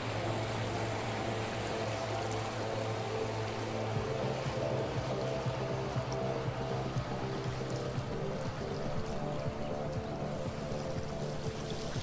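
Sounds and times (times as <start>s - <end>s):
motorboat engine drone: 0.0s - 12.0s
water wash: 0.0s - 12.0s.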